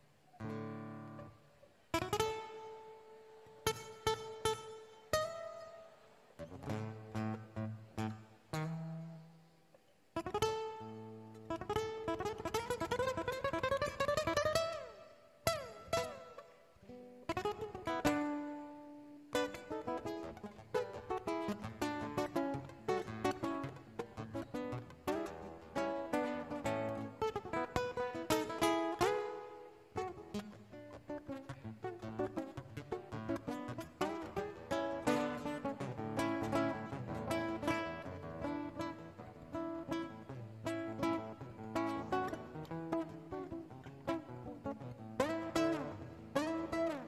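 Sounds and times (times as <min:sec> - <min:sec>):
classical guitar fingerstyle: 0:00.0 - 0:47.0.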